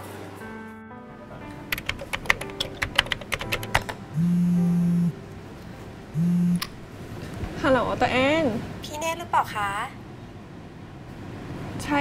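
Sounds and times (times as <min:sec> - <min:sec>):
computer keyboard typing: 0:01.7 - 0:04.0
phone ringing with low buzz: 0:04.2 - 0:05.2, 0:06.2 - 0:06.6.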